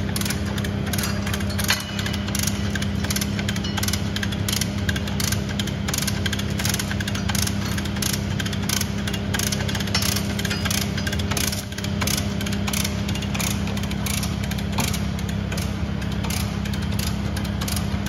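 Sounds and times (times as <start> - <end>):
diesel engine running: 0.0 - 18.0
chain hoist clicking: 0.2 - 18.0.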